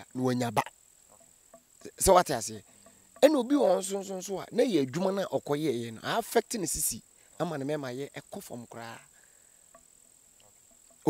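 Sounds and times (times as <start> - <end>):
person speaking: 0.0 - 0.7, 3.2 - 9.1
crickets trilling: 0.0 - 11.0.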